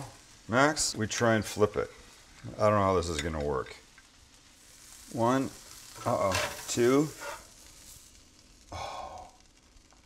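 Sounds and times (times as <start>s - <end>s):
person sighing: 8.7s - 9.4s.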